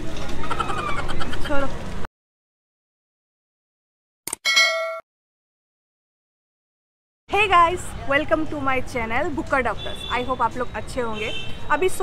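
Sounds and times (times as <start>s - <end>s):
bright notification ding: 4.5s - 5.0s.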